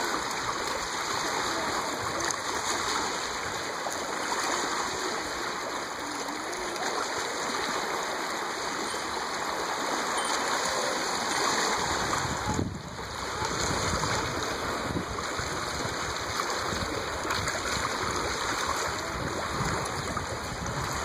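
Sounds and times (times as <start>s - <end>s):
fish churning water: 0.0s - 21.0s
small waves splashing on concrete: 0.0s - 21.0s.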